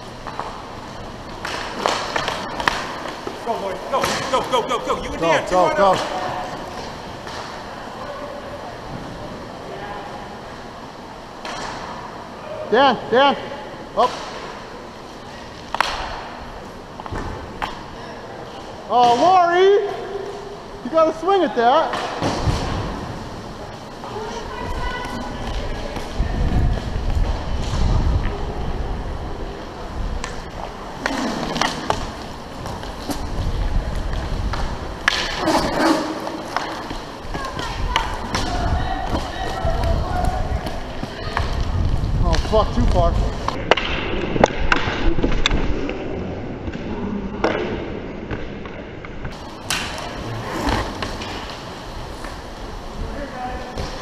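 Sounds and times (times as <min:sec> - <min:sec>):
inline skate wheels rolling: 0:00.0 - 0:08.0, 0:21.9 - 0:54.0
hockey sticks and puck clacking: 0:00.2 - 0:07.6, 0:11.4 - 0:11.9, 0:15.6 - 0:16.3, 0:30.2 - 0:41.7, 0:42.3 - 0:46.0, 0:47.4 - 0:52.4.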